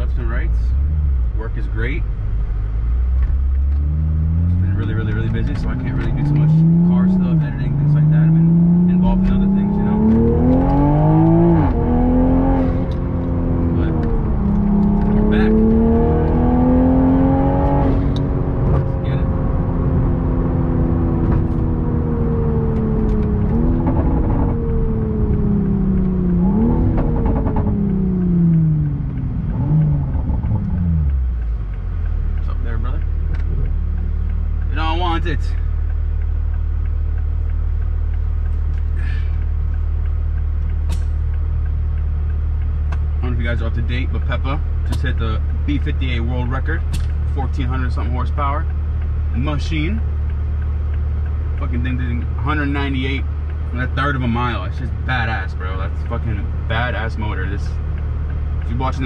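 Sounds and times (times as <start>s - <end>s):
car engine from inside cabin: 0.0s - 59.0s.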